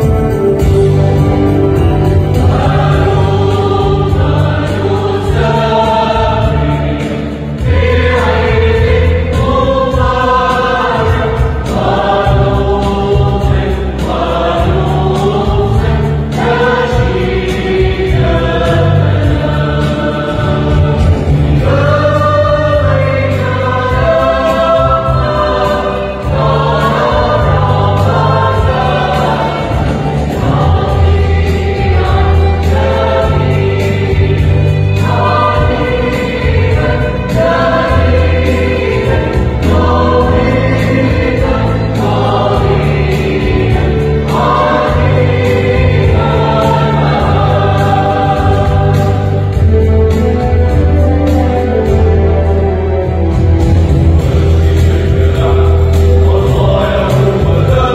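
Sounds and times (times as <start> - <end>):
held bass notes: 0.0 - 57.9
mixed choir singing a hymn: 0.0 - 57.9.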